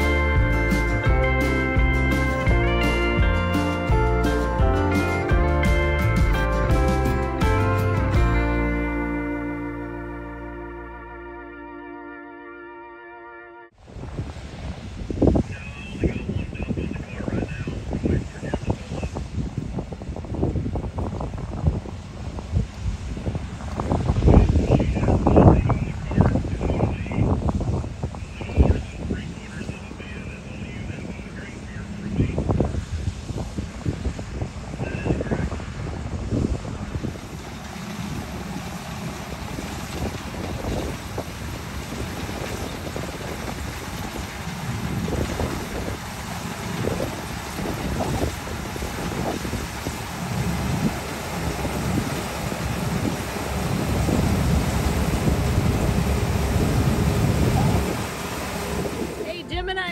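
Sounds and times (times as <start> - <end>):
combine harvester running: 0.0 - 11.3, 28.2 - 59.9
wind buffeting microphone: 13.8 - 59.9.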